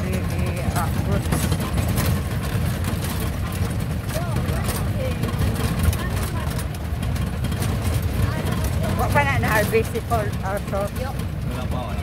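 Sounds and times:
jeep engine running: 0.0 - 12.0
road noise: 0.0 - 12.0.

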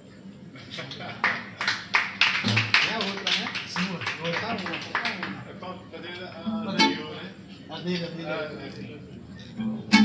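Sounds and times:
acoustic guitar strumming: 6.5 - 7.2, 9.6 - 10.0.

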